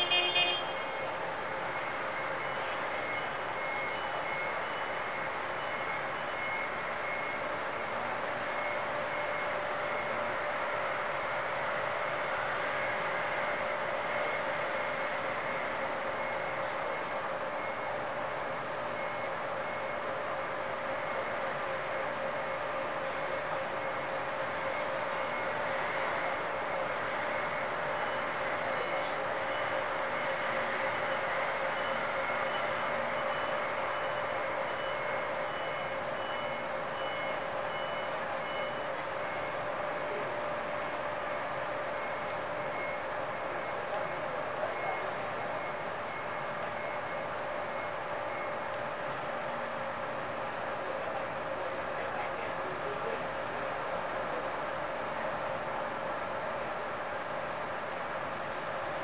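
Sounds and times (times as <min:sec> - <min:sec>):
forklift reversing beeper: 0:00.0 - 0:59.0.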